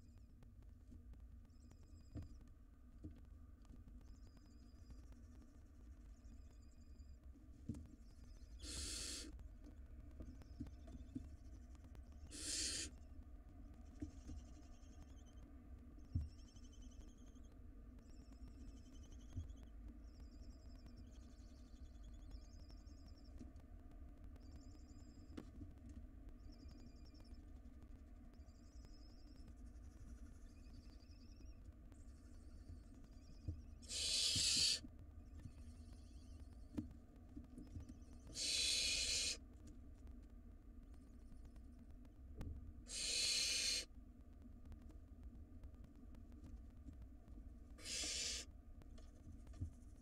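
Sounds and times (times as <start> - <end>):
faint high wavering calls: 8.0 - 9.4, 12.2 - 13.0, 28.3 - 36.8, 38.2 - 39.4, 42.9 - 43.9, 47.8 - 48.5
owl chick hissing call: 8.6 - 9.3, 12.3 - 12.9, 33.8 - 34.8, 38.3 - 39.4, 42.9 - 43.9, 47.8 - 48.5.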